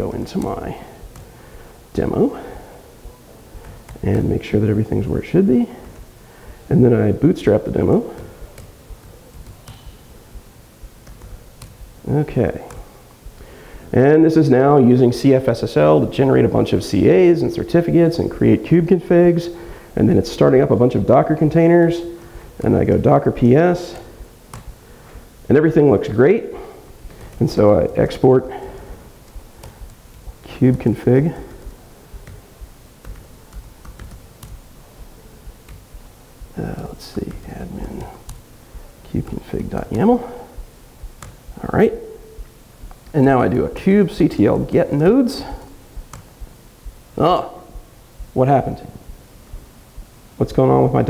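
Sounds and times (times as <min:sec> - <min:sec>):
low room rumble: 0:00.0 - 0:51.0
faint laptop keystrokes: 0:00.2 - 0:01.5, 0:03.6 - 0:04.4, 0:05.8 - 0:06.2, 0:07.7 - 0:13.5, 0:23.9 - 0:24.9, 0:27.0 - 0:27.6, 0:28.5 - 0:38.5, 0:39.1 - 0:41.6, 0:42.4 - 0:43.2, 0:45.4 - 0:46.6.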